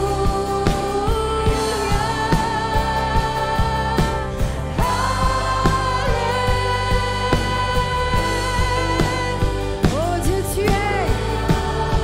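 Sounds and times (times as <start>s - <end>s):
bass guitar: 0.0s - 12.0s
guitars: 0.0s - 12.0s.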